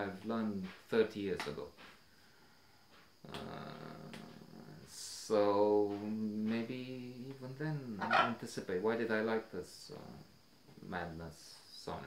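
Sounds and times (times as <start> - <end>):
man saying uhhh: 3.3 - 5.2.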